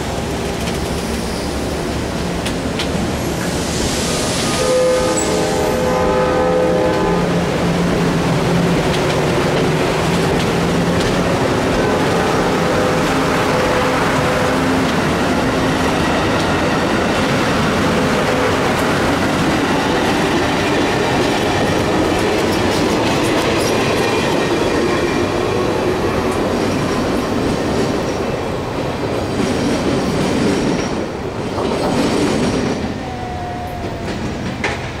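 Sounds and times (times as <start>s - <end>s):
train wheels clattering on rails: 0.0s - 4.6s, 6.8s - 33.0s, 33.7s - 35.0s
train horn: 4.4s - 7.9s, 11.5s - 15.0s.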